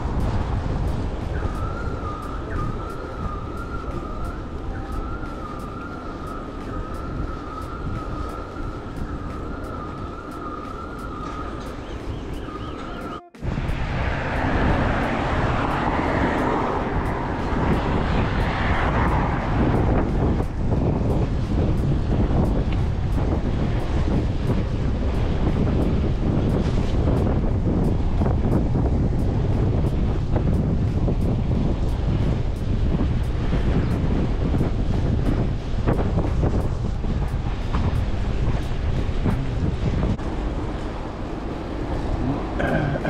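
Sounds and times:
wind rushing over microphone: 0.0 - 43.0
thin wavering high tone: 0.9 - 15.5.

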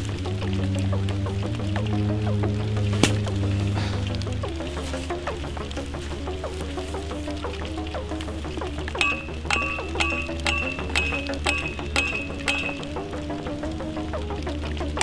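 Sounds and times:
soundtrack music with plucked melody: 0.0 - 15.0
hammer striking metal post: 9.0 - 13.0.

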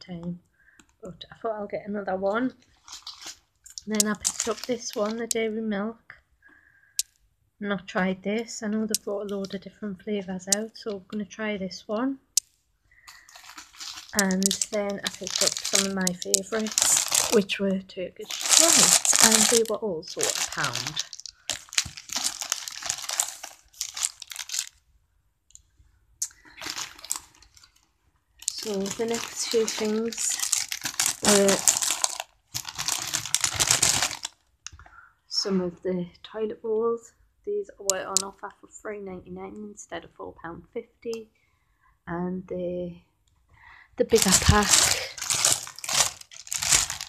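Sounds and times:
plastic wrappers rustling: 2.6 - 5.4, 13.0 - 24.8, 26.2 - 34.5, 44.1 - 47.0
plastic snack packets crinkling: 2.7 - 5.4, 12.9 - 24.8, 26.2 - 34.5, 44.0 - 47.0.

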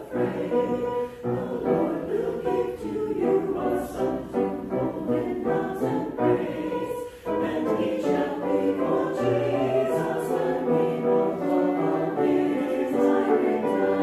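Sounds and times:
mixed choir singing: 0.0 - 14.0.

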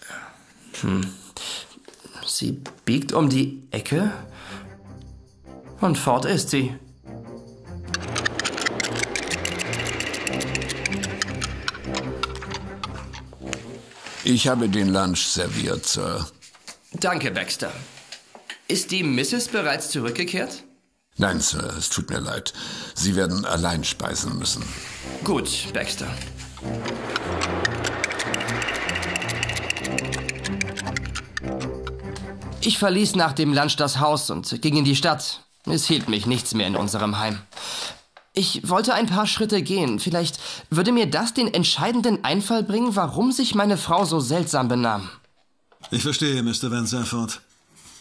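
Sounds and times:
fast busy ticking: 7.9 - 13.3, 26.6 - 32.1.

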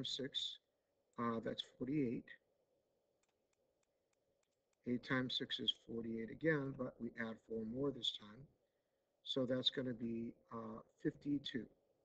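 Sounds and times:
man speaking: 0.0 - 0.6, 1.2 - 2.4, 4.9 - 8.5, 9.3 - 11.7.

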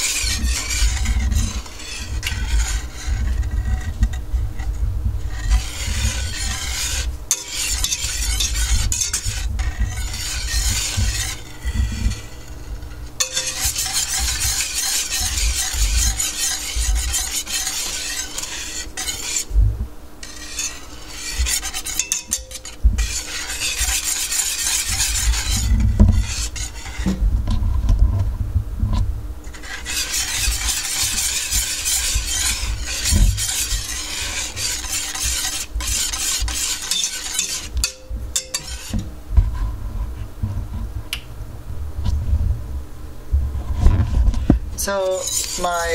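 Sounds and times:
whisk scraping metal pot: 0.0 - 28.3, 28.9 - 40.0, 43.7 - 45.9.

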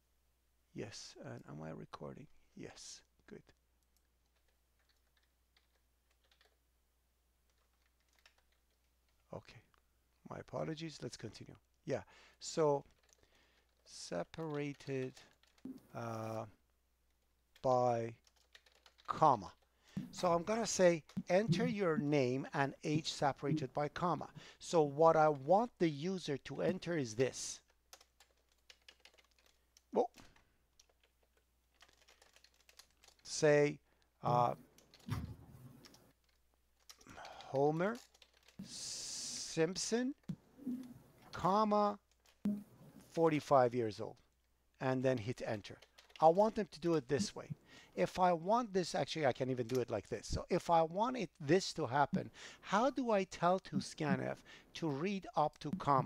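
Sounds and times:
faint keyboard clicks: 3.4 - 6.6, 7.4 - 9.8, 12.8 - 15.8, 17.1 - 22.0, 27.6 - 33.3, 35.8 - 39.4, 45.1 - 46.6, 49.6 - 50.2.

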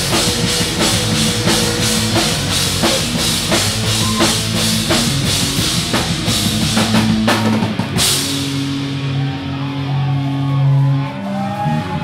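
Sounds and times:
distorted electric guitar drone: 0.0 - 12.0.

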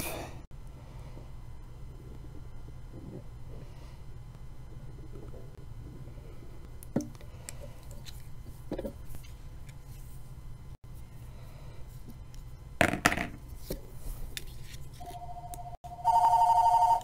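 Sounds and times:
telephone ringing: 15.0 - 17.0.

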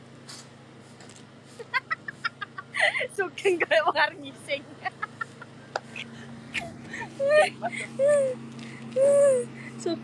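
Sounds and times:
person making high-pitched sounds: 7.2 - 9.5.

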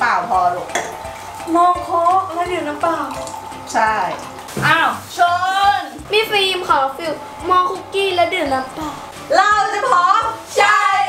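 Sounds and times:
water pouring into a glass: 0.0 - 5.2
background music: 0.0 - 11.0
voices: 0.0 - 11.0.

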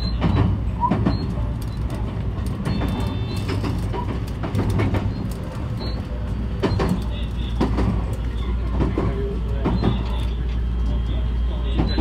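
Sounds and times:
wheels clicking over rail joints: 0.1 - 10.4.

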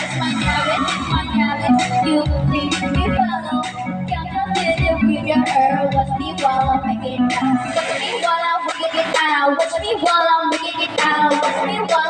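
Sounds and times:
girl singing into microphone: 0.0 - 12.0
karaoke backing track: 0.0 - 12.0.

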